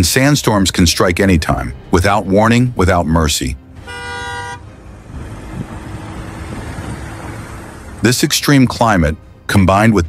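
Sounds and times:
vehicle horn: 3.8 - 4.8.

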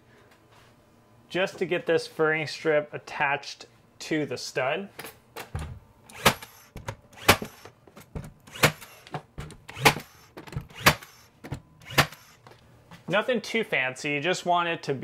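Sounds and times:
brad nailer firing: 6.1 - 12.4.

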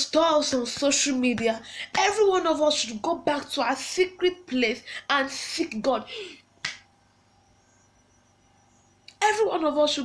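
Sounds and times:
woman speaking: 0.0 - 6.4, 9.1 - 10.0.

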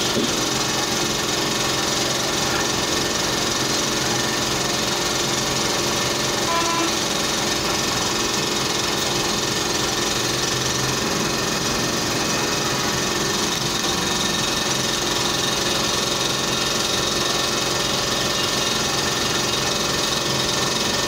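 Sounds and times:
dental machinery whirring: 0.0 - 21.0.

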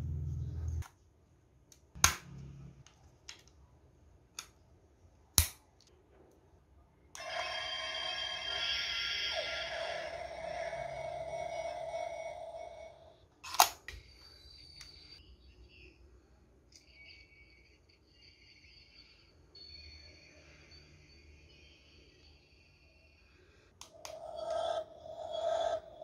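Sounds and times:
toy electronic sound effect: 7.2 - 13.2.

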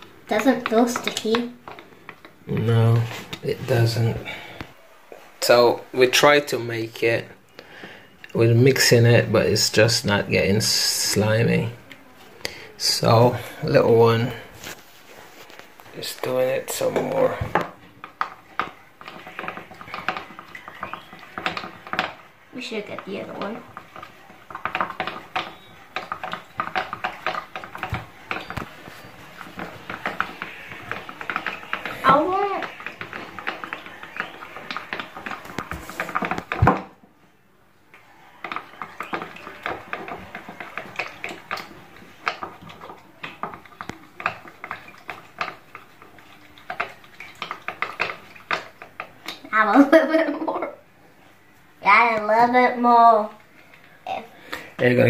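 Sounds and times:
stick stirring in plastic bowl: 0.0 - 37.1, 37.9 - 55.0.

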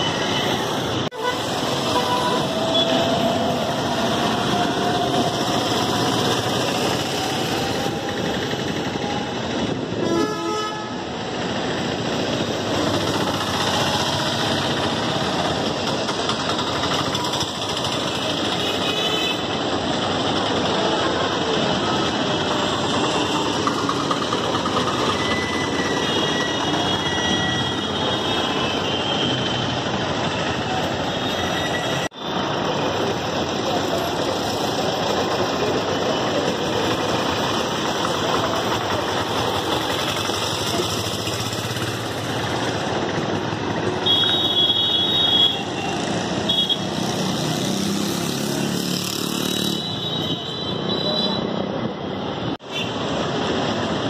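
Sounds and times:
vehicle horns: 0.0 - 3.4, 10.0 - 11.1, 18.4 - 19.5, 25.2 - 29.8, 43.9 - 47.2, 49.5 - 51.7
traffic engine and road noise: 0.0 - 54.0.

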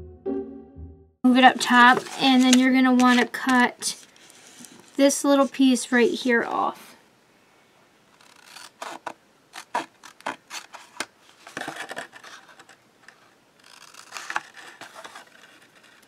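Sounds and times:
paper rustling: 1.5 - 5.8, 8.2 - 16.0
scissors snipping paper: 1.7 - 3.7.

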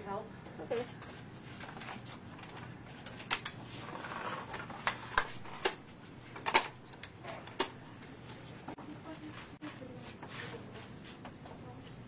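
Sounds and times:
soft rustling: 8.1 - 12.0.

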